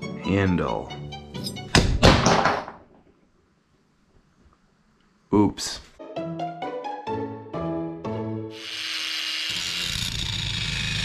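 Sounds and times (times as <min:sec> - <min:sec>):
light string music: 0:00.0 - 0:01.8, 0:06.0 - 0:08.6.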